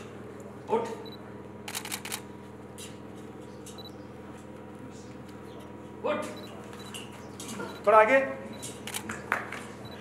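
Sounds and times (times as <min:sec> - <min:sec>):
steady low hum: 0:00.0 - 0:10.0
camera shutter clicks: 0:01.7 - 0:02.2, 0:08.8 - 0:09.1.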